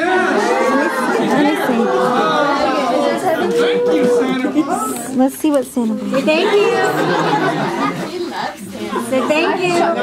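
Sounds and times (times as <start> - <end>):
group chatter: 0.0 - 10.0
voice holding long sound: 1.8 - 4.9.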